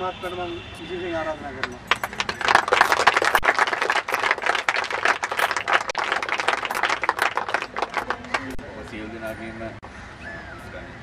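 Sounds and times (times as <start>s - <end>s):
crowd clapping: 1.6s - 8.6s.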